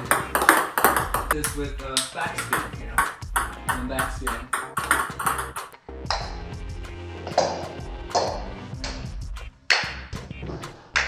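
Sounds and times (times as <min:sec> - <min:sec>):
table tennis ball pings: 0:00.0 - 0:01.6, 0:02.3 - 0:06.3
background music: 0:00.0 - 0:11.0.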